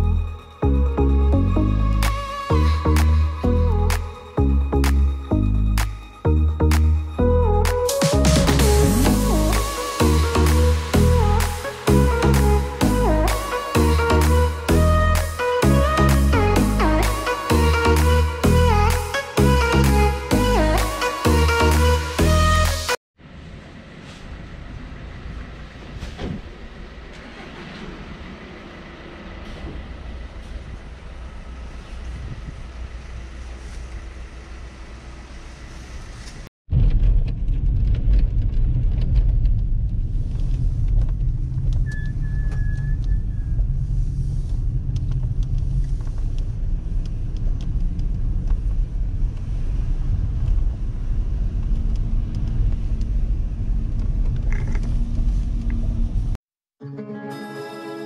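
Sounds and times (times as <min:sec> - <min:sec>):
car engine and road noise: 0:00.0 - 0:36.5, 0:38.4 - 0:56.4
outdoor background sound: 0:00.0 - 0:56.4.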